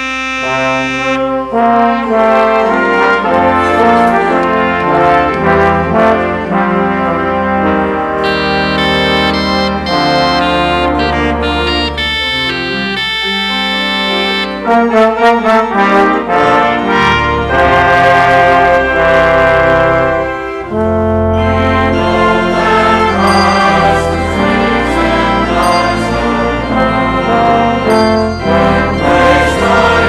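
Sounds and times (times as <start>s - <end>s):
brass instruments playing a hymn: 0.0s - 30.0s.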